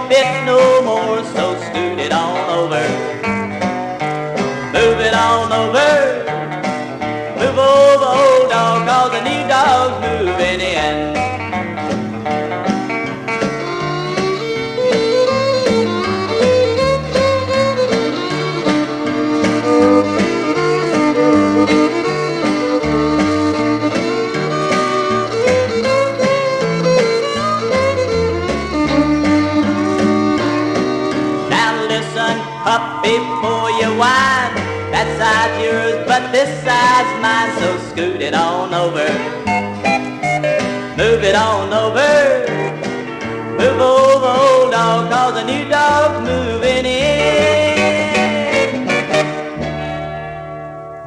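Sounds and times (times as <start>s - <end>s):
country band playing: 0.0s - 51.0s.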